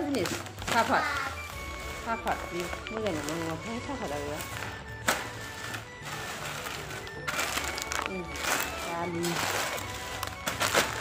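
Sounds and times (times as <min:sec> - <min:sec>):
packaging rustling: 0:00.0 - 0:11.0.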